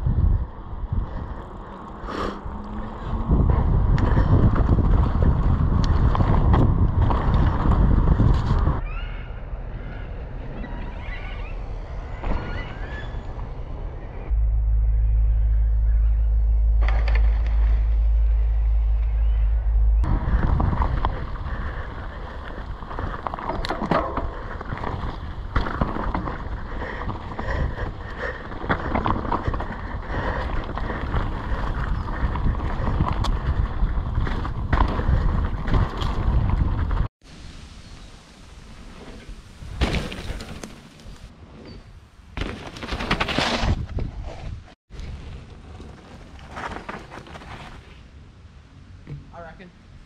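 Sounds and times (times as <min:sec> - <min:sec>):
bike tyre rumble: 0:00.0 - 0:08.8, 0:09.4 - 0:49.2
wind buffeting microphone: 0:00.0 - 0:08.8, 0:17.3 - 0:37.7
birds chirping: 0:08.8 - 0:16.8, 0:17.5 - 0:20.1
bike rattling and knocking: 0:20.0 - 0:37.1
bike knocking over bump: 0:32.2 - 0:37.0, 0:39.7 - 0:41.0.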